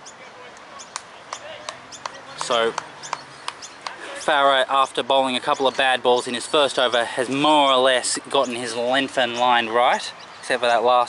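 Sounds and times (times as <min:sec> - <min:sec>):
bird chirps: 0:00.0 - 0:10.8
faint distant voices: 0:00.0 - 0:11.0.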